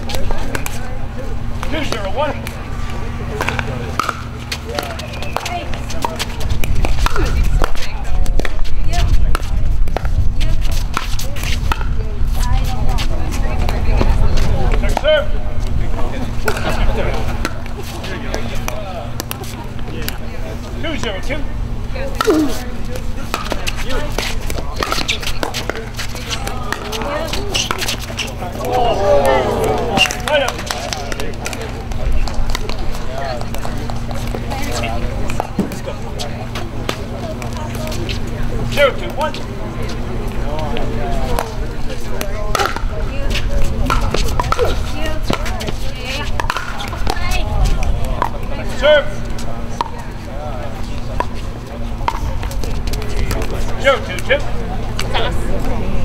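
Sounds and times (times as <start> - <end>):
steady low rumble and hum: 0.0 - 56.0.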